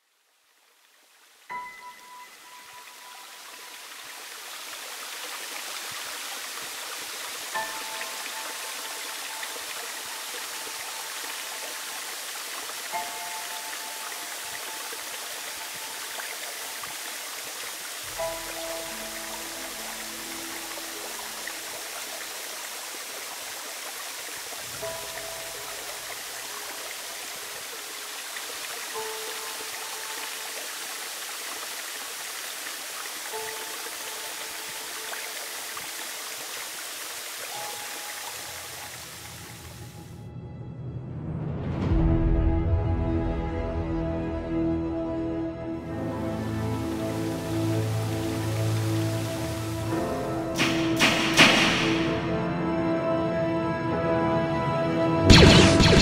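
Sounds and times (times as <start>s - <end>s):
stream flowing over rocks: 0.0s - 40.1s, 45.8s - 52.4s.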